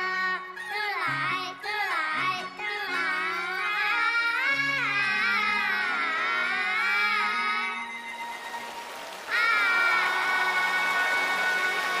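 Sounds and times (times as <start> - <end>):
audience applauding and cheering: 7.8 - 12.0.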